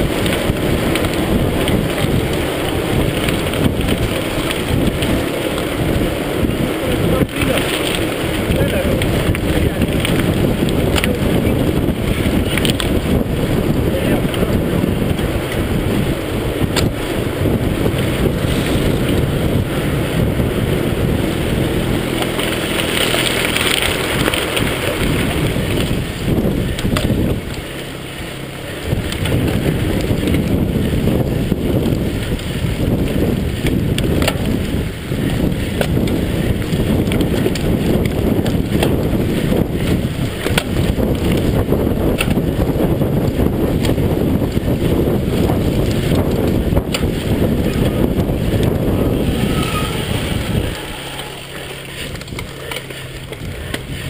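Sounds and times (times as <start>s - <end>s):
bike rattling: 0.0s - 54.0s
bike tyres rushing: 0.0s - 54.0s
wind buffeting microphone: 0.0s - 54.0s
bike frame knocking over bumps: 21.8s - 27.7s, 28.9s - 49.4s.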